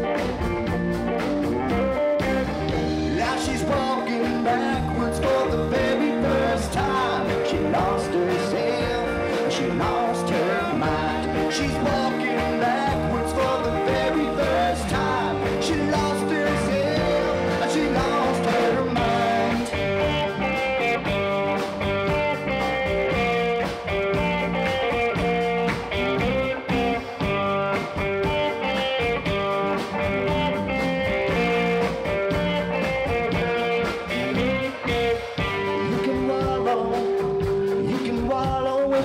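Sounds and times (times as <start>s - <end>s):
drum kit: 0.0s - 39.0s
electric bass: 0.0s - 39.0s
electric guitars: 0.0s - 39.0s.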